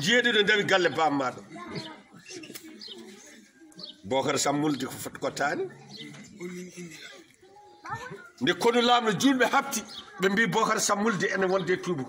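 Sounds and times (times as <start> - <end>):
man speaking loudly: 0.0 - 1.5, 8.4 - 12.0.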